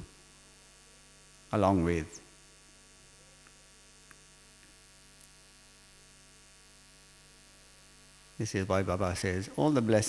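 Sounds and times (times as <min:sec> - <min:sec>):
faint electrical mains hum: 0:00.0 - 0:10.0
man speaking: 0:01.5 - 0:02.2, 0:08.4 - 0:10.0
faint ticks: 0:03.4 - 0:05.4.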